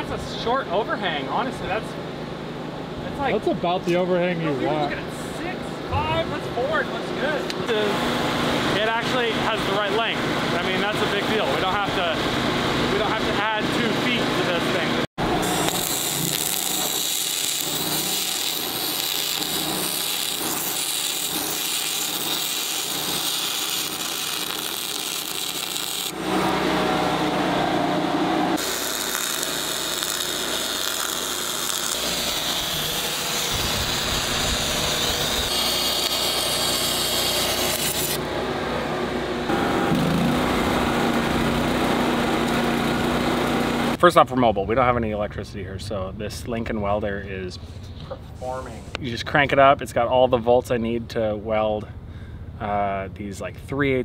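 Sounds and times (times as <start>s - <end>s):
arc welding: 14.7s - 27.3s, 28.5s - 38.3s
power tool cutting and grinding: 15.2s - 38.4s, 39.0s - 44.0s.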